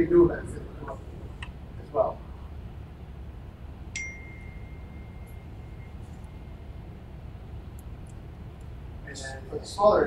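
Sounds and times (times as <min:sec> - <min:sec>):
low room hum: 0:00.0 - 0:10.0
high ringing ding: 0:03.9 - 0:06.0.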